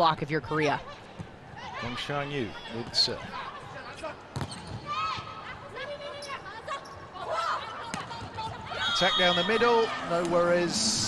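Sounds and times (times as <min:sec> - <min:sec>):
arena crowd noise: 0:00.0 - 0:11.0
shoe squeaks on court: 0:04.4 - 0:04.9.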